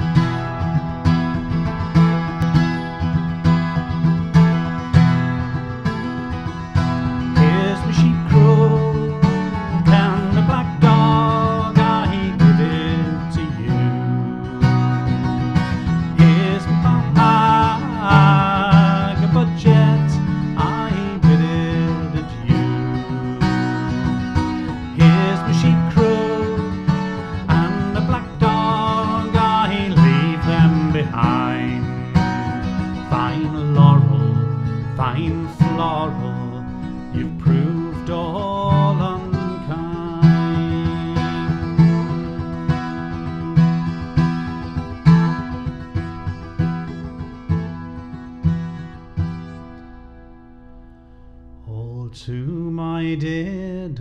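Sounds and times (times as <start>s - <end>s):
acoustic guitar folk tune: 0.0s - 54.0s
man singing: 7.2s - 15.0s, 15.8s - 42.9s, 51.6s - 54.0s.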